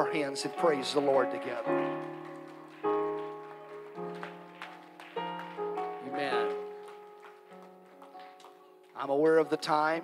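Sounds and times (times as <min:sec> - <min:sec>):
soft keyboard chords: 0:00.0 - 0:10.0.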